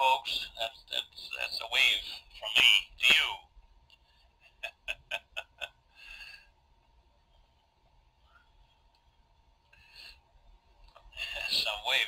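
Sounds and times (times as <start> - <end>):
faint steady tone: 0.0 - 12.0
man chuckling: 4.4 - 6.4.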